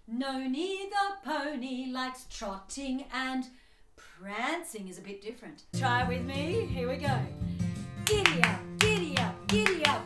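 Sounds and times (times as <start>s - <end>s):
guitar music: 5.7s - 10.0s
hand claps: 8.0s - 10.0s.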